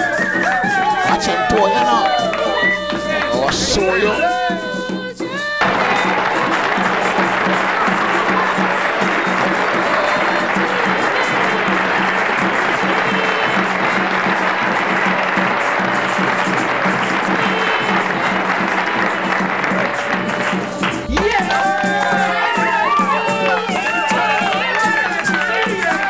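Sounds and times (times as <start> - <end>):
band music: 0.0 - 26.0
crowd clapping: 0.0 - 26.0.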